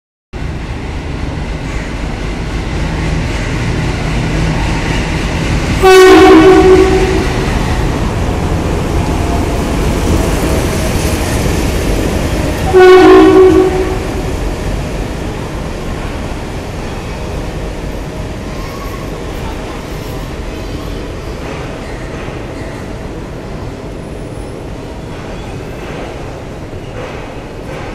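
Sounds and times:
diesel locomotive engine rumbling: 0.4 - 27.9
locomotive horn: 5.8 - 7.5, 12.7 - 14.2.

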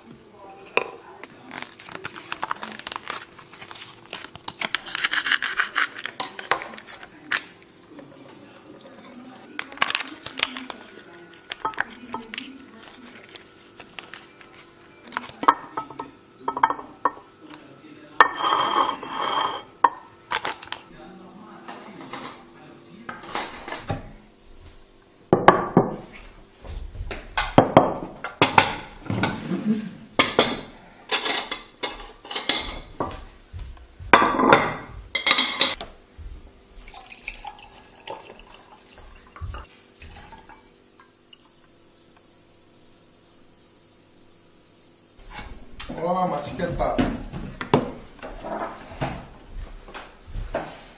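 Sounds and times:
plates and cutlery clinking: 4.1 - 7.6, 8.8 - 17.5, 18.2 - 20.9, 23.1 - 24.2, 27.3 - 35.9, 36.8 - 41.1, 46.5 - 50.8.

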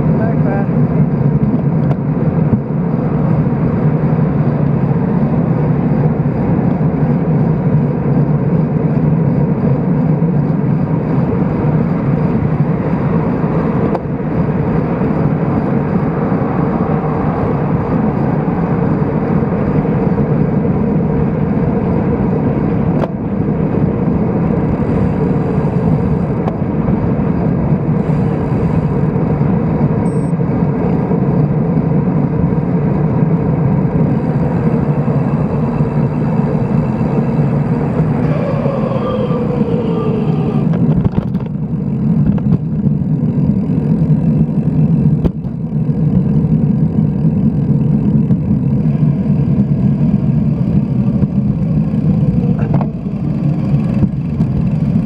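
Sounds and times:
wind on microphone: 0.0 - 43.4
road noise: 0.0 - 55.0
short falling whine: 30.0 - 30.4, 34.0 - 41.4.

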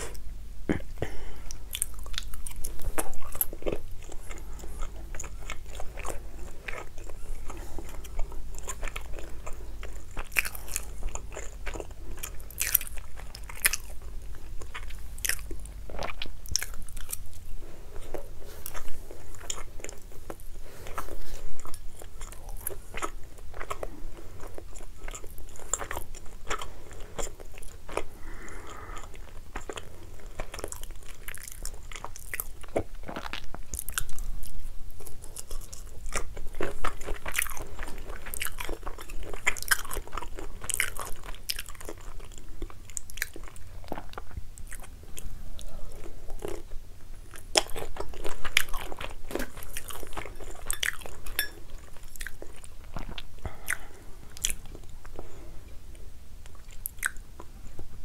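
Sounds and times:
person chewing: 0.0 - 58.0.

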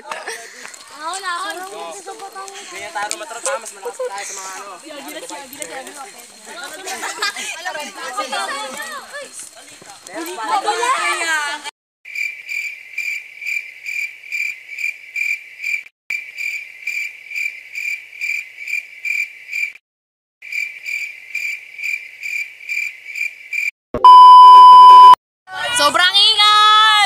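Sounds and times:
cricket chirping: 0.1 - 10.6, 12.1 - 19.7, 20.4 - 23.7
loud electronic bleep: 24.0 - 25.2.

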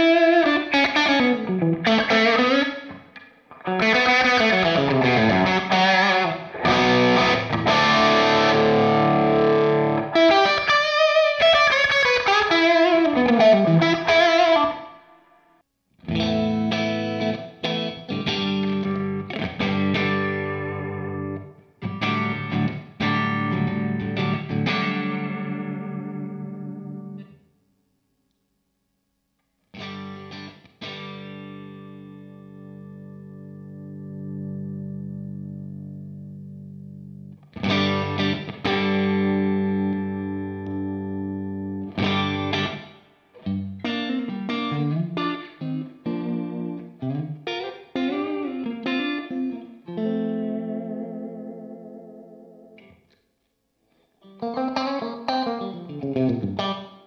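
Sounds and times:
overdriven electric guitar: 0.0 - 15.2, 16.0 - 27.4, 29.6 - 53.2, 53.9 - 57.0.

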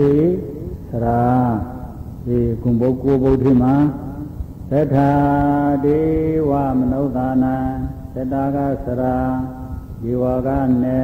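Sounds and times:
monk chanting: 0.0 - 11.0.

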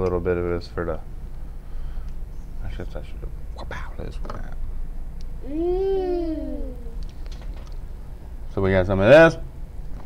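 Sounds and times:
drawn-out vocal call: 5.4 - 7.0.

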